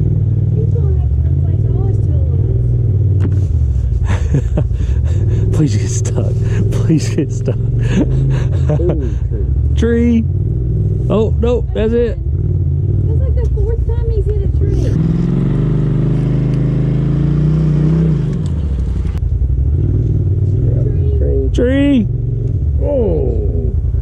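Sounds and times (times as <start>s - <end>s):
utility vehicle engine revving: 0.0s - 24.0s
person speaking: 5.0s - 10.3s, 13.8s - 15.0s.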